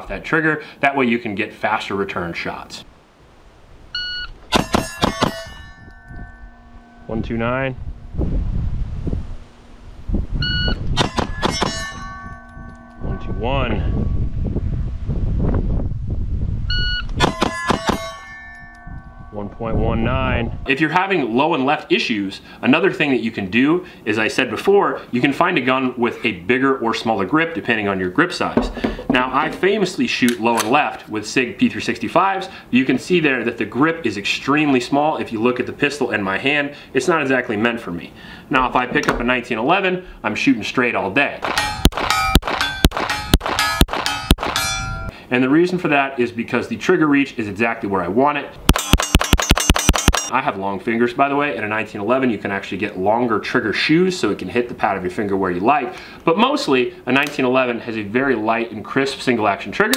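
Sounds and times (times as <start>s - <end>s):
steel plates clanging: 4.5s - 7.7s, 10.8s - 14.0s, 17.2s - 19.4s, 41.4s - 45.2s, 48.7s - 50.3s.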